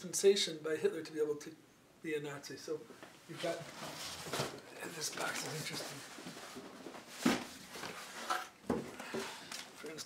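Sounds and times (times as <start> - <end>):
cardboard box set down: 3.7 - 4.6.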